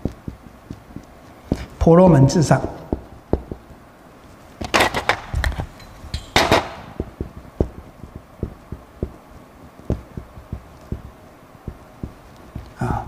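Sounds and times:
marker tapping on board: 2.8 - 3.8, 7.0 - 9.2, 9.8 - 12.8.

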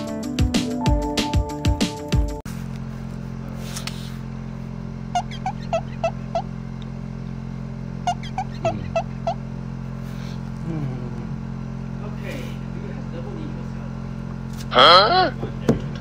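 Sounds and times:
steady low hum: 1.0 - 16.0
high squeaky chirps: 5.2 - 6.5, 8.1 - 9.4.

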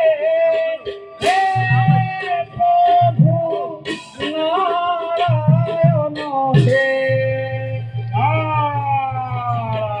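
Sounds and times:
person singing long sliding notes: 0.0 - 10.0.

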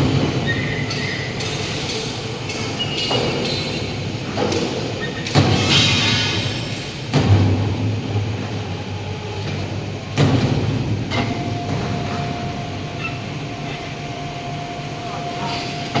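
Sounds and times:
low machinery hum: 0.0 - 16.0
crane hoist whine: 10.9 - 16.0.

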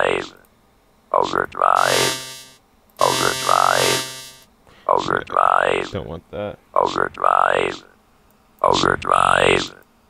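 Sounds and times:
robotic vocoded voice: 1.2 - 2.3, 3.0 - 4.2, 6.8 - 7.9, 8.6 - 9.8.

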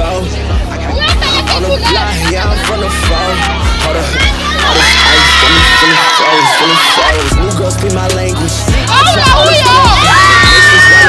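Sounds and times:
crowd cheering and shouting: 0.0 - 11.0
hip hop music: 0.0 - 11.0.

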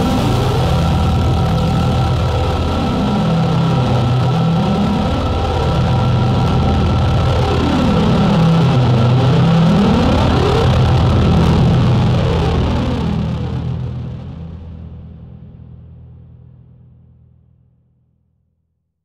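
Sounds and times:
dark electronic synthesizer drone: 0.0 - 17.4.

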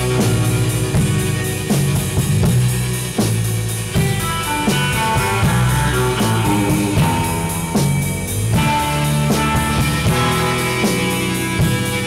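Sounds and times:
rock music on guitar and drums: 0.0 - 12.0.

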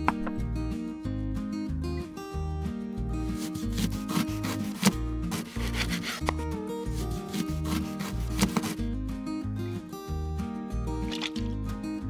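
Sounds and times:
knife slicing potato on board: 3.3 - 6.4, 7.0 - 8.8.

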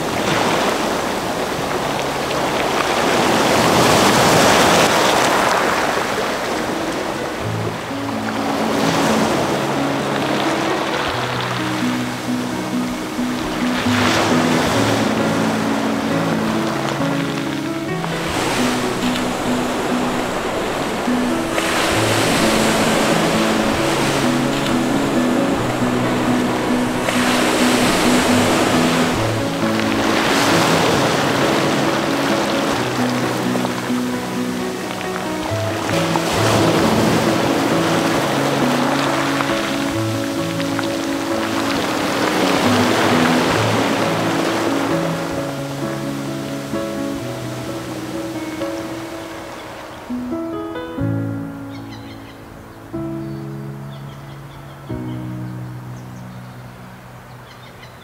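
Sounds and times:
waves washing over pebbles: 0.0 - 50.0
music with slow held notes: 7.0 - 57.3.

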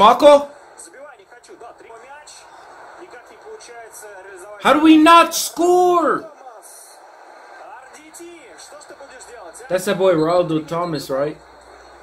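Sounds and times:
man commentating: 0.0 - 7.0, 7.6 - 11.4
stadium crowd din: 0.0 - 12.0.

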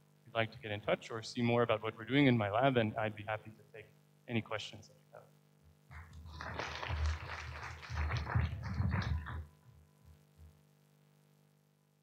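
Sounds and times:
audience applauding: 5.9 - 9.5.

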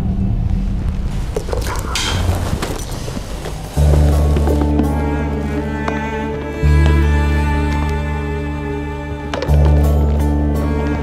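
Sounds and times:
low bowed strings: 0.0 - 11.0
low dark music drone: 0.0 - 11.0
handling clicks and rustles: 1.1 - 5.0.

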